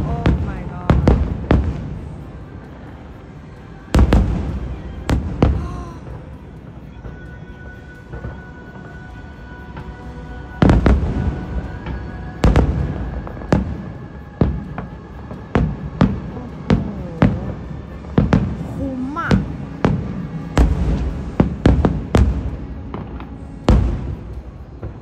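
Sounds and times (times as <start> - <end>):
fireworks booming: 0.0 - 2.3, 3.9 - 6.4, 10.6 - 25.0.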